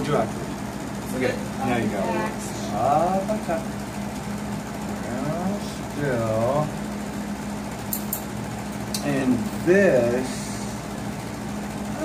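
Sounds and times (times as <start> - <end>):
motor humming: 0.0 - 12.0.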